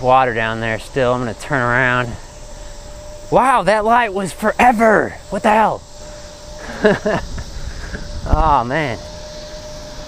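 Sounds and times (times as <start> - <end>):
rider's voice: 0.0 - 2.3, 3.3 - 5.9, 8.2 - 9.1
bike tyres rolling on pavement: 0.0 - 10.0
wind noise: 5.1 - 10.0.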